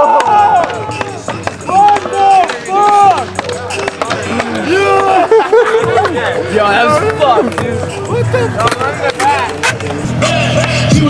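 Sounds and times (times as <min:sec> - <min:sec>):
young men hollering: 0:00.0 - 0:11.0.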